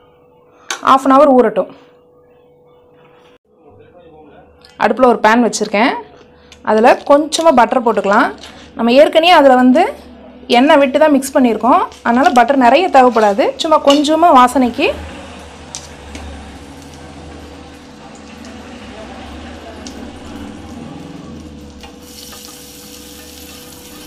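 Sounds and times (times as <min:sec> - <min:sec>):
butter sizzling in a frying pan: 0:16.6 - 0:24.0.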